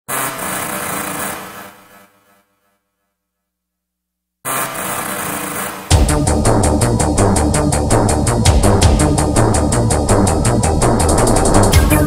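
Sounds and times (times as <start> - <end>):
buzzing mechanical grind: 0.1 - 2.0, 4.5 - 12.0
harsh distorted electronic noise: 4.5 - 12.0.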